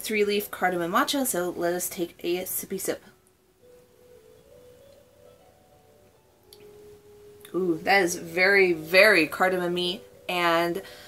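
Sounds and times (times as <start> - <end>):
soft held music notes: 0.0 - 11.0.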